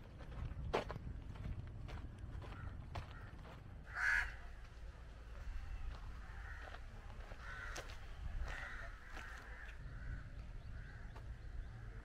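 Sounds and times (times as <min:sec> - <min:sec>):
steady low rumble: 0:00.0 - 0:12.0
birds calling: 0:05.3 - 0:12.0.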